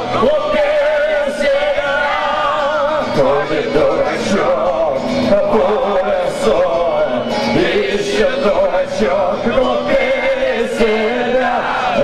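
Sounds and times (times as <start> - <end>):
guitar: 0.0 - 12.0
man singing into a microphone: 0.0 - 12.0.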